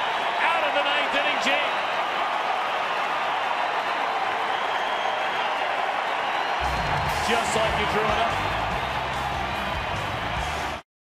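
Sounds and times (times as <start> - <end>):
stadium crowd noise: 0.0 - 10.8
stadium music: 0.0 - 10.8.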